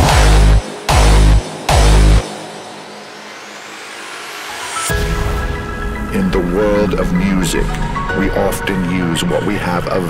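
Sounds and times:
distorted kick and bass hit: 0:00.0 - 0:02.6.

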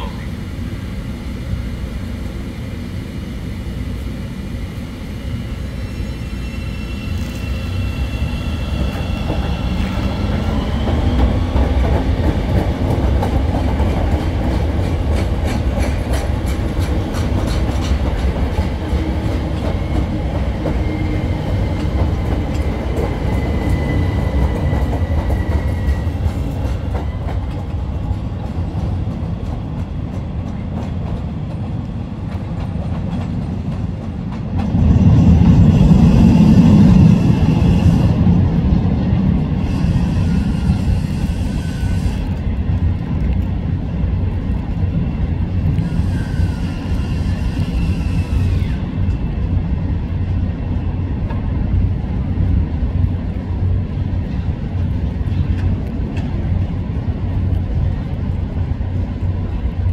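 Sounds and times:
train motor whine: 0:00.0 - 0:12.0, 0:39.6 - 0:42.4, 0:45.7 - 0:49.2.

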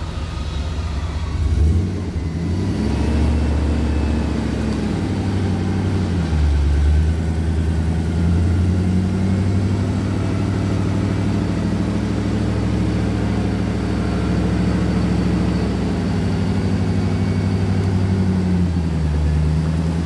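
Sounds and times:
engine revving in mud: 0:00.0 - 0:20.0.

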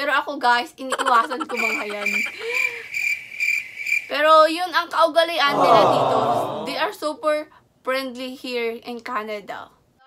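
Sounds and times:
cricket chirping: 0:00.9 - 0:04.1.

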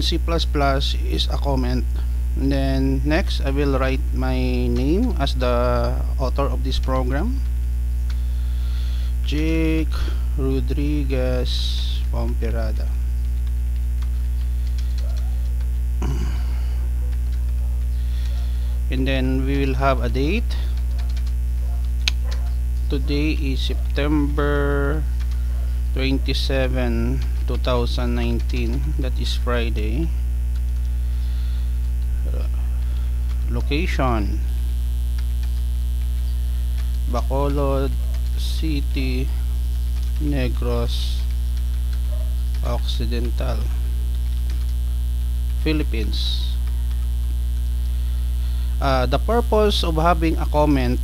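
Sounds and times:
man saying uh: 0:00.0 - 0:07.5, 0:09.2 - 0:13.0, 0:16.0 - 0:20.8, 0:22.9 - 0:25.1, 0:26.0 - 0:30.2, 0:32.1 - 0:32.8, 0:33.4 - 0:34.6, 0:37.1 - 0:39.5, 0:40.2 - 0:41.3, 0:42.6 - 0:43.9, 0:45.6 - 0:46.6, 0:48.8 - 0:51.0
computer keys typing: 0:00.0 - 0:51.0
electrical mains hum: 0:00.0 - 0:51.0.

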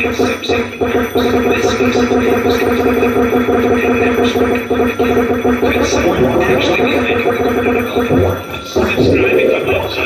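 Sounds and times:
distorted echoing electronic drone: 0:00.0 - 0:10.0.

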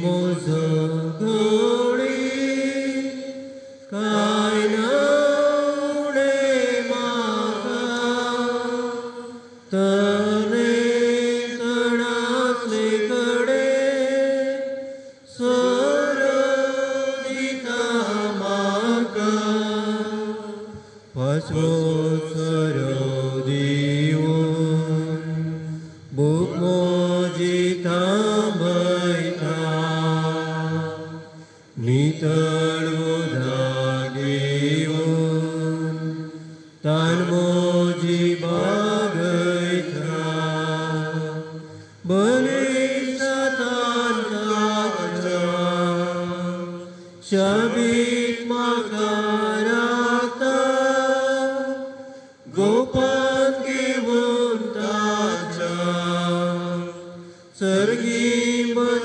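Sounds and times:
hymn sung slowly: 0:00.0 - 0:59.0.

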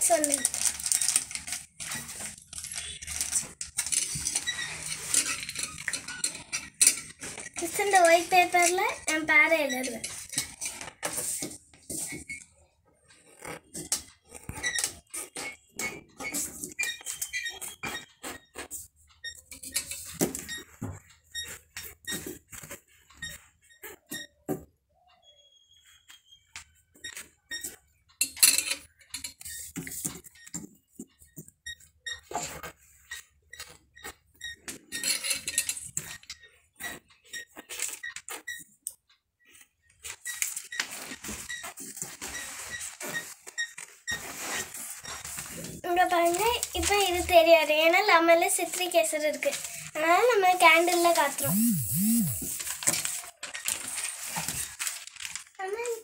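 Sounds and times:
plastic cup crinkling: 0:00.0 - 0:04.4
short squeaks of writing: 0:01.8 - 0:07.6, 0:09.7 - 0:28.0, 0:28.8 - 0:45.8, 0:51.4 - 0:52.5.

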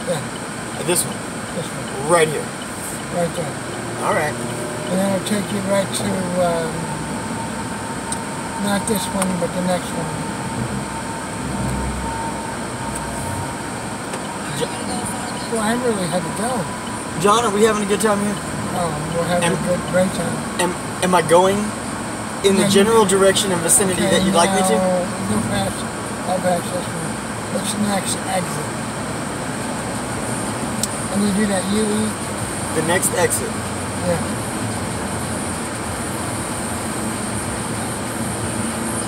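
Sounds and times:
car cabin road noise: 0:00.0 - 0:39.0.

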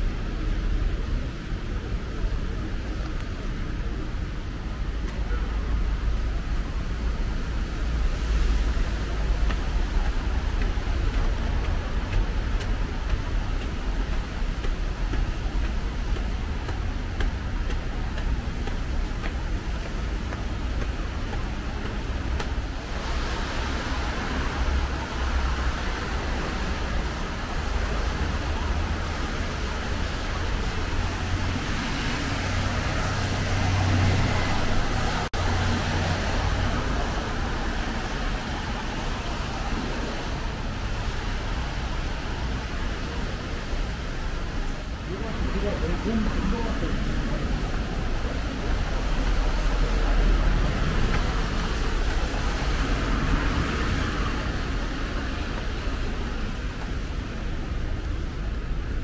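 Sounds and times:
traffic on wet road: 0:00.0 - 0:59.0.

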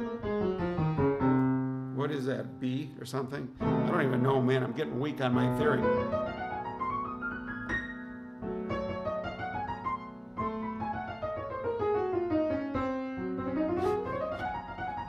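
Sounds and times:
fast jazz piano runs: 0:00.0 - 0:01.8, 0:03.6 - 0:15.0.

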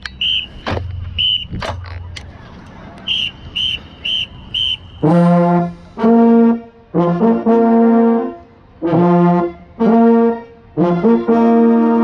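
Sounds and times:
short high whistle blasts: 0:00.1 - 0:01.6, 0:03.0 - 0:05.3.

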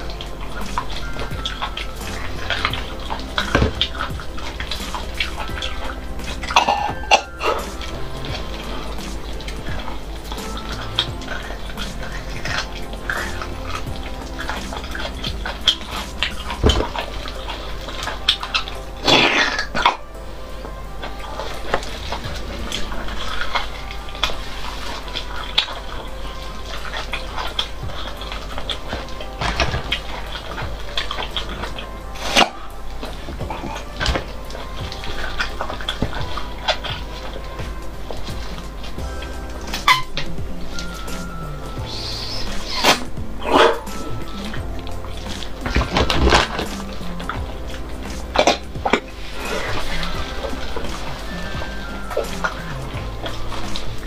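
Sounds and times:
background music: 0:00.0 - 0:54.0
mouth clicks: 0:00.0 - 0:54.0
wet sucking and slurping: 0:00.0 - 0:54.0.

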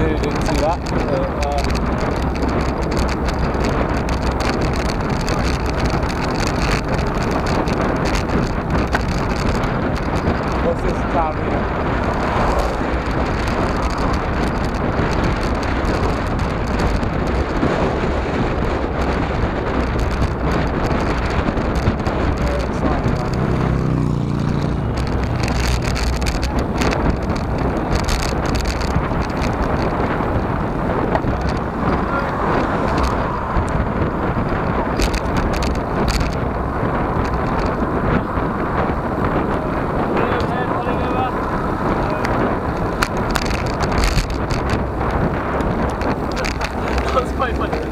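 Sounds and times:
road noise from bike: 0:00.0 - 0:47.9
wind rush: 0:00.0 - 0:47.9.

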